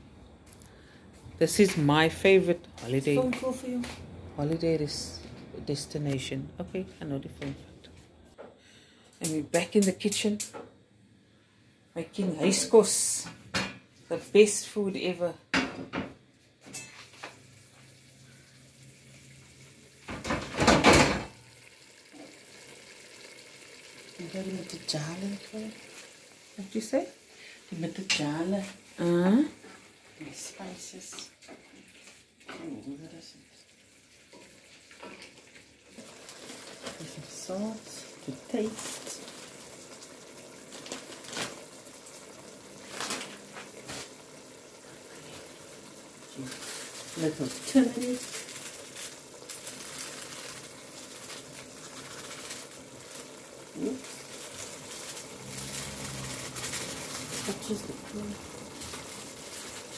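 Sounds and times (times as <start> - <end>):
pot bubbling: 16.6 - 59.9.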